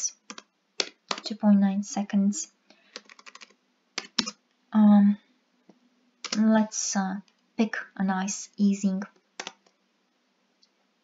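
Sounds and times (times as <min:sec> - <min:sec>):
computer mouse click: 0:03.0 - 0:04.4, 0:06.2 - 0:06.4.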